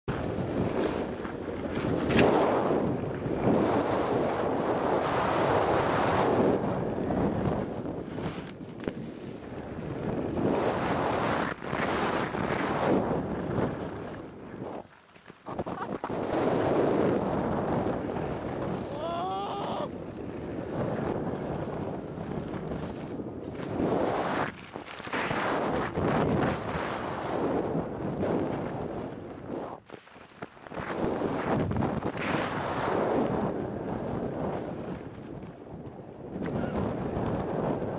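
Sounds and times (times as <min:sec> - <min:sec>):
wind rushing over microphone: 0:00.1 - 0:29.9, 0:30.7 - 0:37.9
skis scraping over snow: 0:00.1 - 0:35.3.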